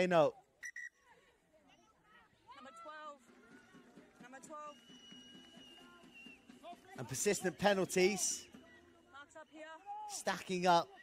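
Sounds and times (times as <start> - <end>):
high steady whistle: 4.7 - 6.5.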